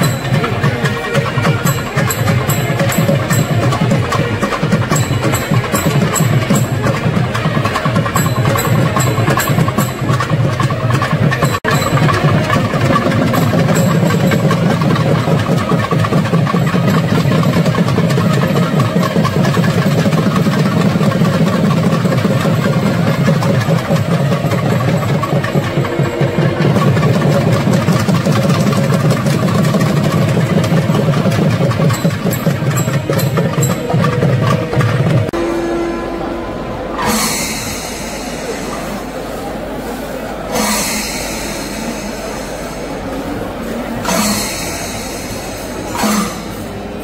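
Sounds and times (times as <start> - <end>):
drum ensemble fast roll: 0.0 - 35.4.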